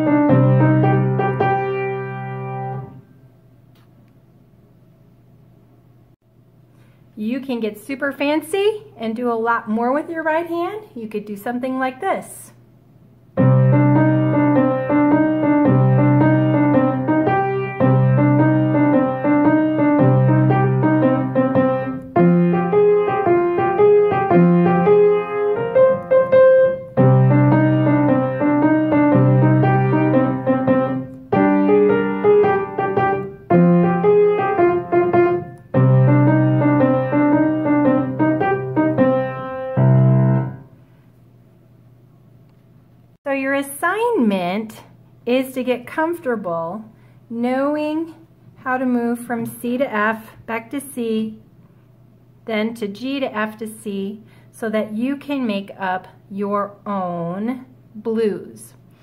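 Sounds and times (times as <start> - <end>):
blues piano playing: 0.0 - 3.0, 13.4 - 40.8.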